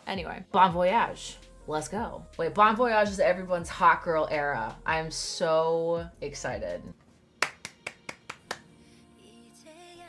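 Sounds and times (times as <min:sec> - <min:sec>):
quick light hand claps: 0:07.4 - 0:08.7.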